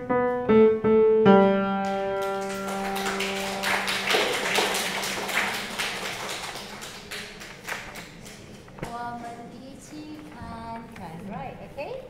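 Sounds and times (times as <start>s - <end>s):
audience applause: 1.8s - 8.6s.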